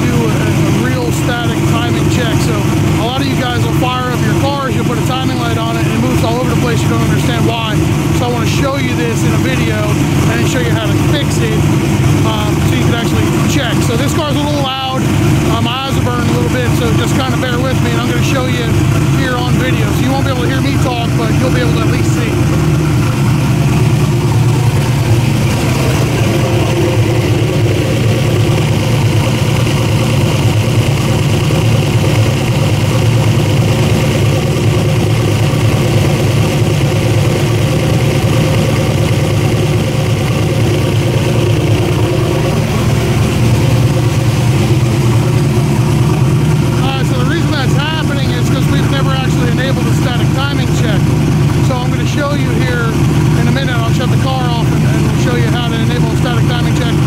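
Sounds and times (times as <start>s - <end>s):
turbocharged engine idling: 0.0s - 57.0s.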